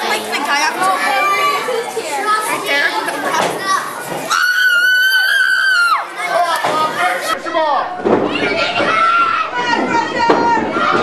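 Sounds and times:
crowd chatter with children: 0.0 - 11.0.

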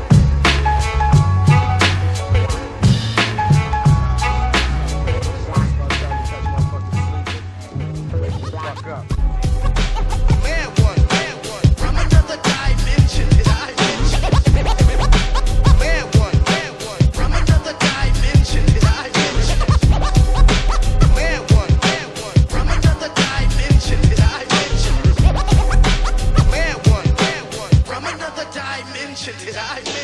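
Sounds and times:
hip hop drums and bass: 0.0 - 28.5
turntable scratching: 8.2 - 27.9.

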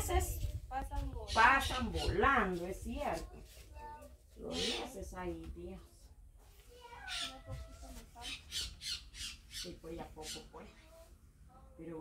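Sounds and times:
bird squawking: 7.1 - 7.5, 8.2 - 10.6.

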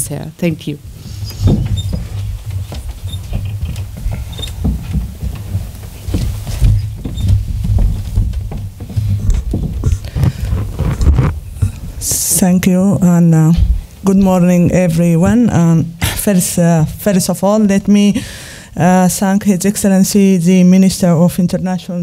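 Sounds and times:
microphone thumps and rumble: 0.8 - 18.3
scuffs and clicks on microphone: 1.0 - 11.9.

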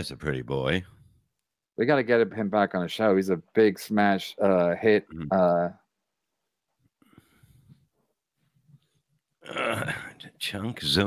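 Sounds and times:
man burping loudly: 9.4 - 10.2.

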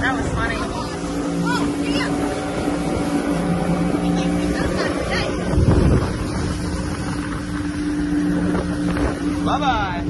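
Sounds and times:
motorboat engine droning: 0.0 - 10.0
water rushing: 0.0 - 10.0
wind on microphone: 0.0 - 10.0.

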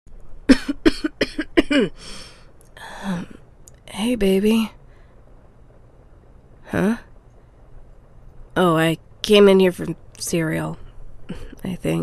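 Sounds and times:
woman coughing: 0.5 - 2.0.

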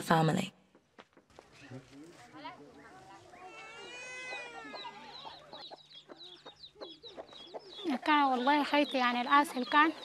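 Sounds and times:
chicks peeping: 3.3 - 10.0
hen clucking: 3.3 - 10.0.

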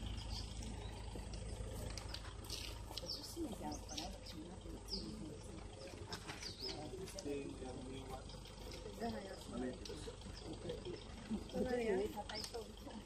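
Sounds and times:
people talking quietly: 0.0 - 13.0
steady low rumble: 0.0 - 13.0.

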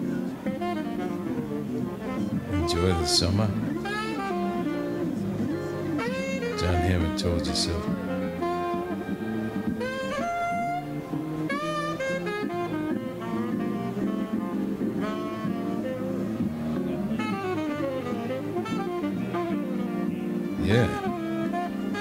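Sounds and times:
lower accompanying instruments: 0.0 - 22.0
tenor saxophone playing jazz: 0.0 - 22.0.

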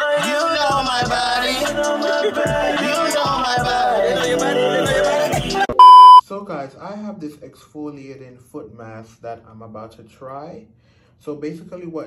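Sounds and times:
rap song: 0.0 - 5.8
high-pitched bleep tone: 5.7 - 6.2.

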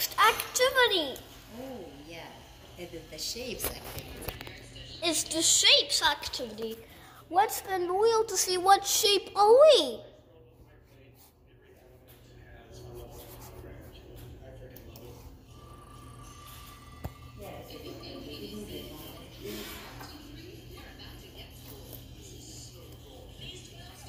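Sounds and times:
faint indistinct voices: 0.0 - 24.0.

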